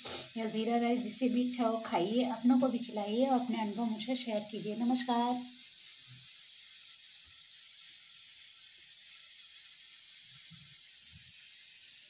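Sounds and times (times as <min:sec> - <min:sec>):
high background hiss: 0:00.0 - 0:05.7.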